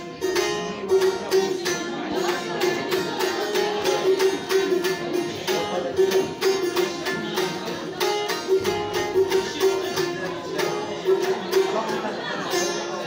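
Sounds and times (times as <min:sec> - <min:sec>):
long-necked lute plucked over drone: 0:00.0 - 0:13.0.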